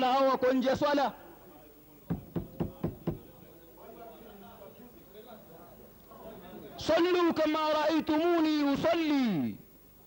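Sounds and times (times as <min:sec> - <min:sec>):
quick even knocks: 0:02.1 - 0:03.3.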